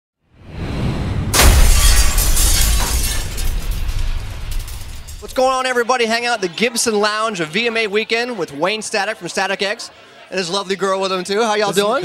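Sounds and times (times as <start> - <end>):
loud crash: 0.4 - 5.8
heavy bass: 0.8 - 5.3.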